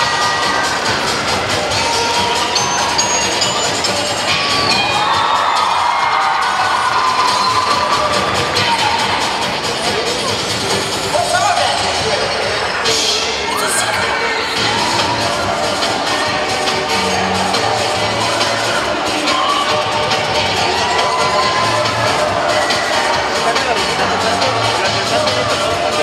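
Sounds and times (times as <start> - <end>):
children shouting: 0.0 - 10.2, 13.0 - 23.4
crowd cheering: 0.0 - 11.9, 13.3 - 24.7
cheer routine music: 0.0 - 26.0.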